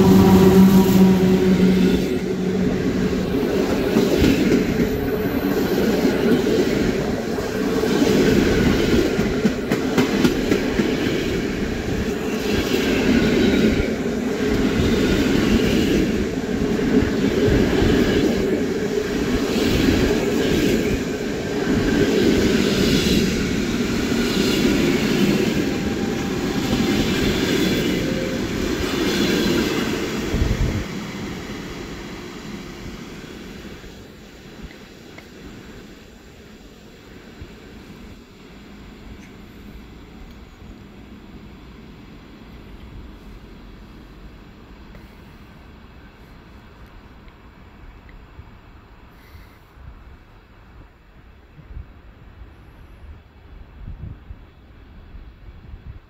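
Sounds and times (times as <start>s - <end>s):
humming tone: 0.0s - 3.3s
train wheels rumbling on rail: 0.0s - 56.0s.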